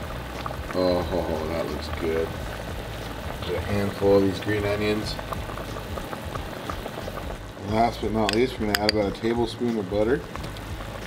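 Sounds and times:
soup bubbling in a pot: 0:00.0 - 0:11.0.

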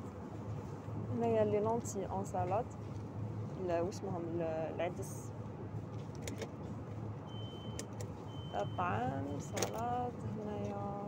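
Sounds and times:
low hum of chilled display: 0:00.0 - 0:11.0
store background noise: 0:00.0 - 0:11.0.

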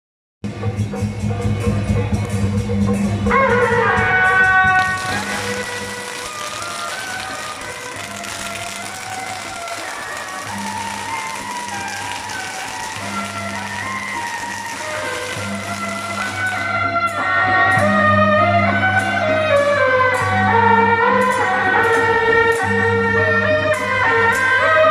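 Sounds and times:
firecrackers crackling: 0:04.0 - 0:17.3
processional band playing: 0:04.2 - 0:17.3.

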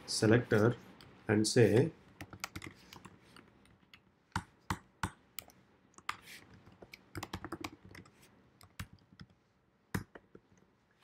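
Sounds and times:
typing on computer keyboard: 0:02.2 - 0:03.2, 0:03.8 - 0:09.4.

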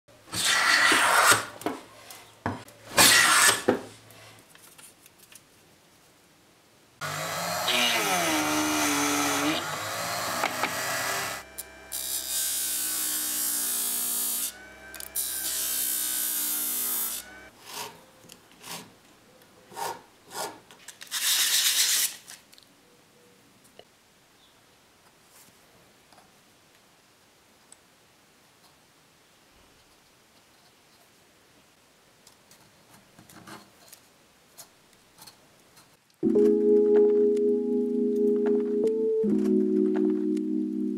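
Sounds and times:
scraping strokes on wood: 0:00.3 - 0:01.8, 0:02.9 - 0:03.9
power sander running: 0:07.0 - 0:17.5.

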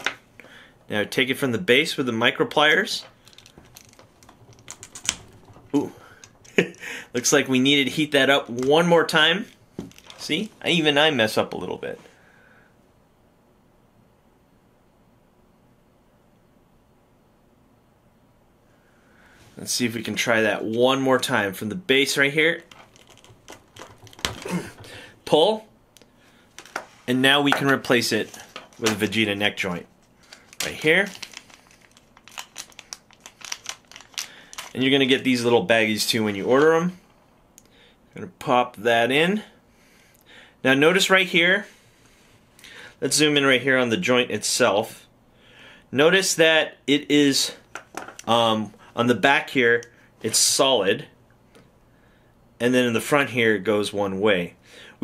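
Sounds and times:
plastic bag crinkling: 0:02.8 - 0:06.9, 0:22.5 - 0:25.0, 0:27.8 - 0:35.3
plastic clicks and scrapes: 0:03.1 - 0:06.4, 0:22.6 - 0:24.9.

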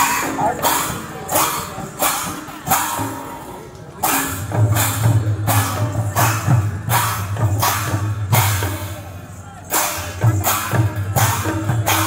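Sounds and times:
barrel drums playing: 0:00.0 - 0:09.1, 0:09.7 - 0:12.0
brass hand cymbals clashing: 0:00.0 - 0:12.0.

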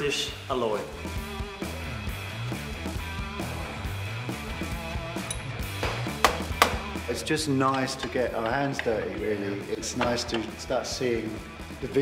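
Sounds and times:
bass-heavy background music: 0:00.0 - 0:12.0.

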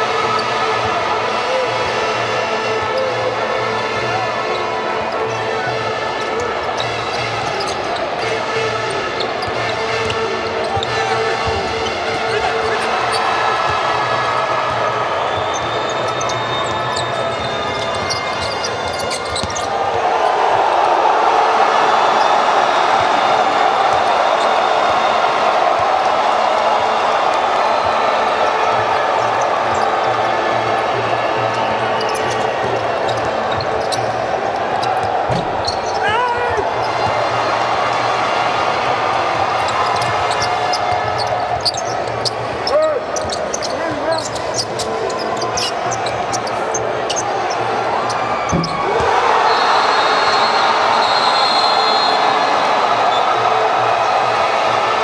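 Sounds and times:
crowd murmur: 0:00.0 - 0:55.0
sneaker squeaks: 0:00.2 - 0:20.6, 0:27.8 - 0:37.3, 0:39.4 - 0:52.4.

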